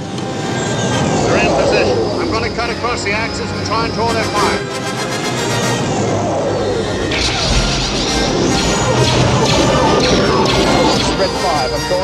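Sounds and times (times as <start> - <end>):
orchestral score: 0.0 - 12.0
sudden blast: 0.8 - 12.0.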